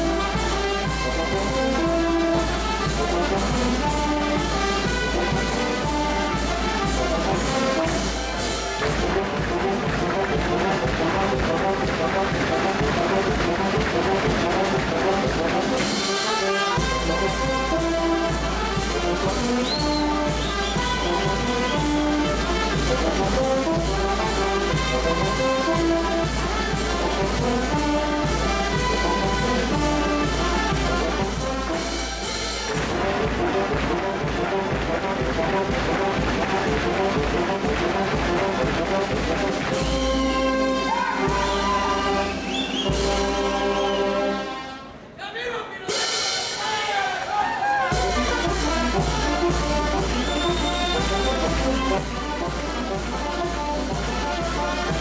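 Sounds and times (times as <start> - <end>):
brass band playing dance tune: 0.0 - 55.0.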